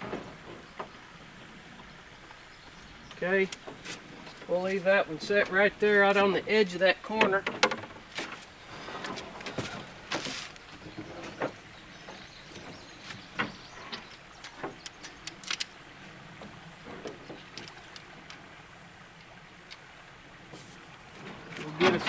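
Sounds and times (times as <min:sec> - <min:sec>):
knocks and clunks in a boat: 0:00.0 - 0:18.6, 0:20.4 - 0:22.0
faint steady hiss: 0:00.0 - 0:22.0.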